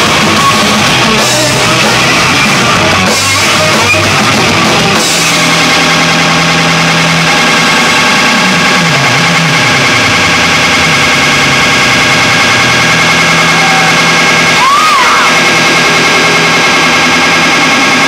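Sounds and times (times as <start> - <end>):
distorted electric guitar noise: 0.0 - 18.0.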